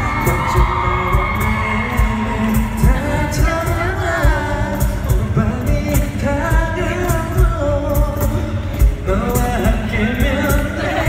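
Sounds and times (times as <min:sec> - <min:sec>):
acoustic guitar: 0:00.0 - 0:11.0
bass guitar: 0:00.0 - 0:11.0
sung vocals: 0:00.0 - 0:11.0.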